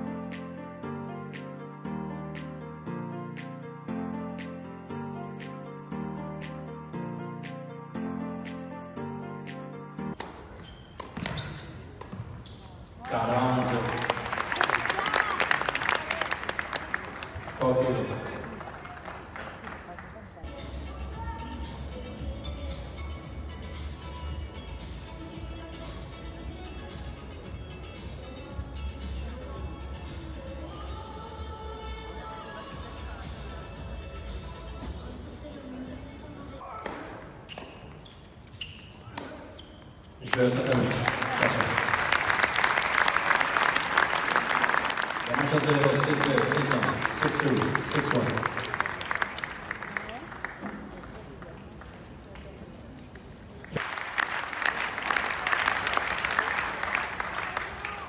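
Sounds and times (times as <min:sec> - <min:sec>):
tennis balls hit and bouncing: 0:10.2 - 0:12.4, 0:36.6 - 0:38.0.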